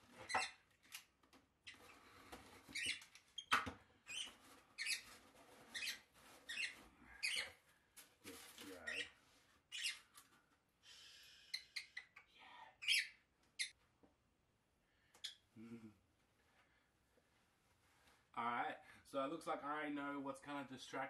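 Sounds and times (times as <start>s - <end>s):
bird chirping: 2.7s - 5.1s, 5.7s - 7.5s, 8.8s - 9.1s, 9.7s - 10.1s, 12.8s - 13.7s
cardboard and paper rustling: 8.0s - 8.9s.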